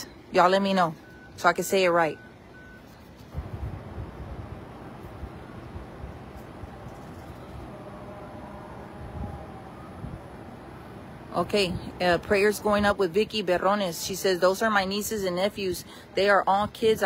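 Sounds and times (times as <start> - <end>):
low vehicle engine rumble: 0.0 - 17.0
short high beeps: 2.1 - 3.1.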